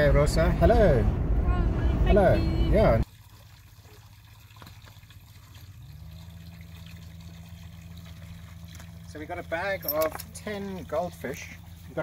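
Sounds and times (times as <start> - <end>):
low hum: 0.0 - 3.0
water trickling into a tank: 3.0 - 12.0.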